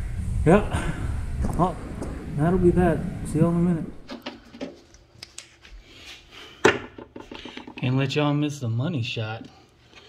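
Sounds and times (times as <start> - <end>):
light clicks and knocks of handling parts: 6.6 - 7.9.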